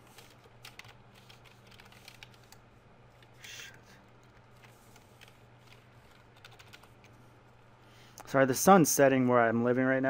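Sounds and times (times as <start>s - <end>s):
steady low hum: 0.0s - 10.0s
computer keyboard keystrokes: 0.2s - 2.6s, 4.2s - 7.2s.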